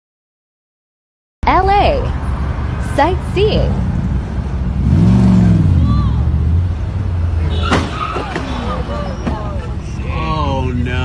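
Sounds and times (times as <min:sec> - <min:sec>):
car engine revving: 0:02.2 - 0:11.0
car crash bang: 0:07.4 - 0:09.6.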